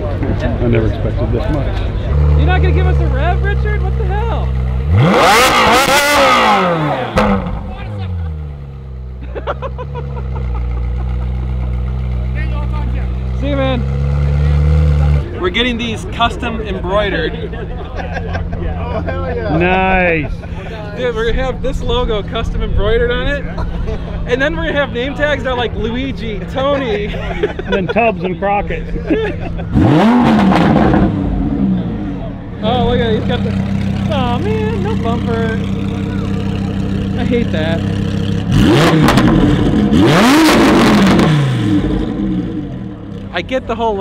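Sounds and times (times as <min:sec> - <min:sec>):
car engine running at low revs: 0:00.0 - 0:44.0
person speaking: 0:32.6 - 0:37.8.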